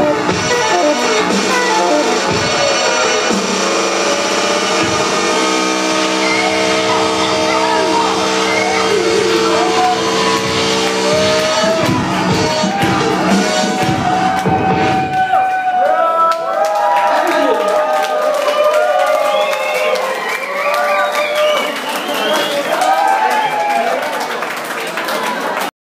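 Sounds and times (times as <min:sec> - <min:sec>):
live band with saxophone: 0:00.0 - 0:15.2
voices shouting: 0:06.2 - 0:16.1.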